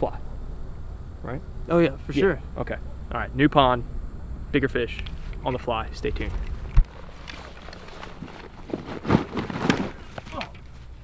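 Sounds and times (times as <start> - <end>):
rubber waders rustling: 6.6 - 11.0.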